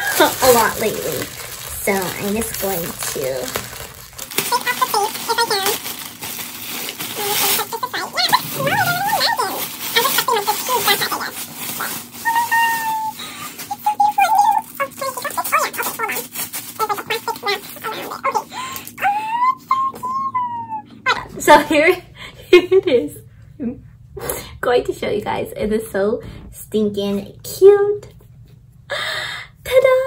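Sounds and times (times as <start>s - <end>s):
plastic wrap crinkling: 0.0s - 19.9s.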